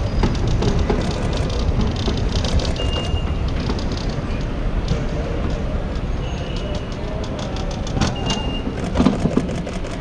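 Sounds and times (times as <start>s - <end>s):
road traffic rumble: 0.0s - 10.0s
clicks and rattles: 0.2s - 4.0s
faint voices: 4.1s - 10.0s.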